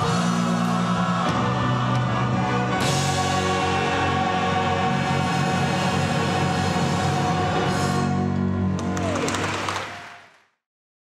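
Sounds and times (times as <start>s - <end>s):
choir singing with piano and orchestra: 0.0s - 9.0s.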